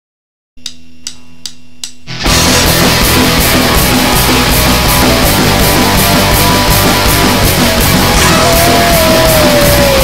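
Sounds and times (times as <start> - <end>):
drumstick count-in clicks: 0.6 - 2.1.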